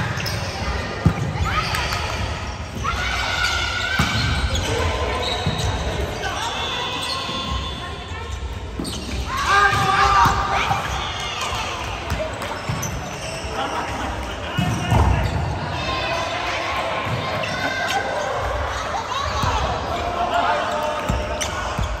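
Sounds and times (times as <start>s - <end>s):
players shouting: 9.2s - 12.3s.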